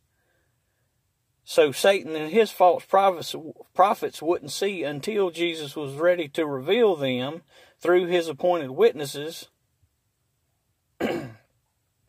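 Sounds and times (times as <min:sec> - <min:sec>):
man clearing throat: 0:11.0 - 0:11.5.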